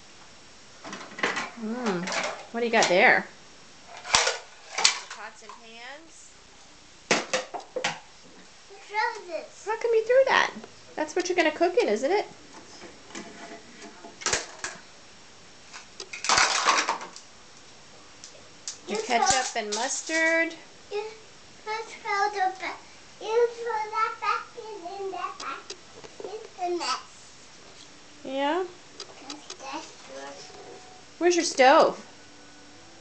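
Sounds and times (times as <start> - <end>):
toy pot clattering: 16.2 - 17.1, 19.0 - 20.0
toddler sing-song vocalising: 21.7 - 25.7.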